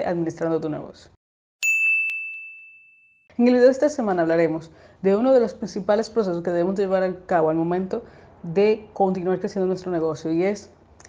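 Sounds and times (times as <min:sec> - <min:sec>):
high bell-like ding: 0:01.6 - 0:03.3.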